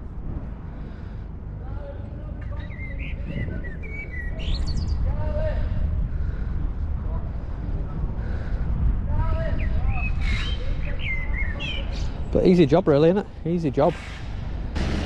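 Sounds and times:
steady low rumble: 0.0s - 15.0s
small birds chirping: 2.4s - 5.3s, 9.3s - 12.8s.

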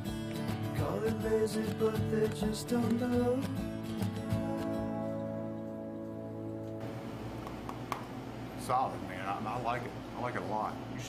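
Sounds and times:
acoustic guitar chord ringing: 0.0s - 7.3s
low room hum: 4.4s - 11.0s.

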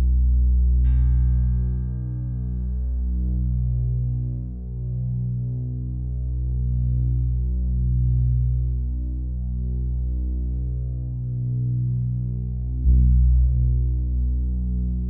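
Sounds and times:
deep throbbing drone: 0.0s - 15.0s.

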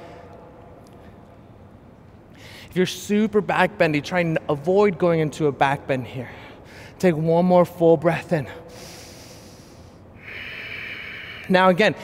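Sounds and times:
man breathing through the nose: 8.7s - 11.5s.

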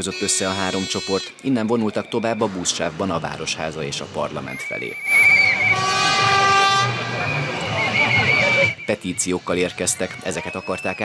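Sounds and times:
loud horn blast: 0.0s - 1.4s, 5.0s - 8.8s
crowd noise: 0.0s - 11.0s
shrill whistles trilling: 0.0s - 11.0s.

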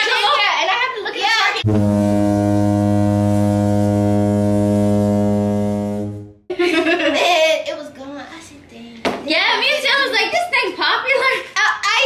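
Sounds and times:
low buzzy horn-like tone: 1.6s - 6.5s.

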